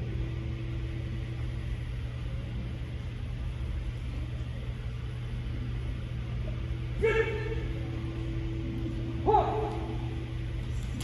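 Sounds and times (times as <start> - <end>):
low hum in hall: 0.0 - 11.0
person shouting: 7.0 - 7.8, 9.2 - 10.0.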